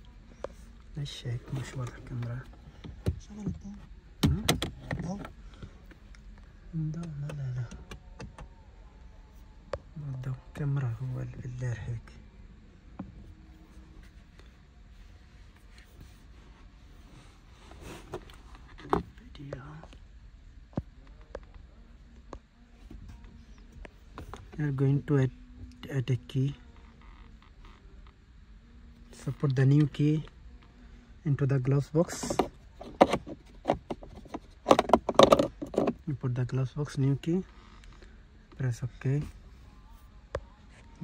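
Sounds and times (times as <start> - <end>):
plastic key fob knocks and rattles: 32.2 - 36.0.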